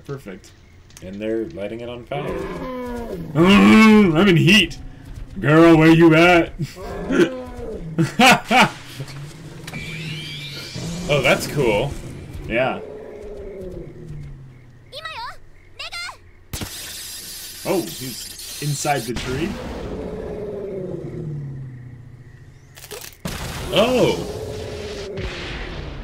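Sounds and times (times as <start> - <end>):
low drone: 3.2 - 14.4
sharp clicks: 16.5 - 19.4.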